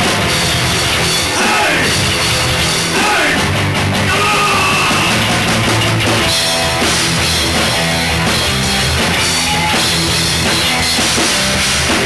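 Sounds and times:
heavy rock band playing: 0.0s - 12.0s
shouted vocal: 1.3s - 2.0s, 2.9s - 5.4s, 9.4s - 10.0s.

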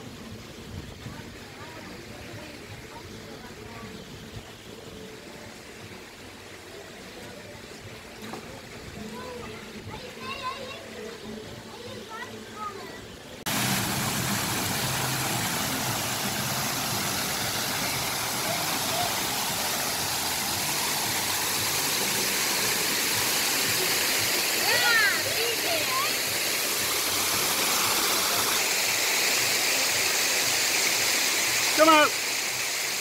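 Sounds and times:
waterfall rushing and splashing: 0.0s - 33.0s.

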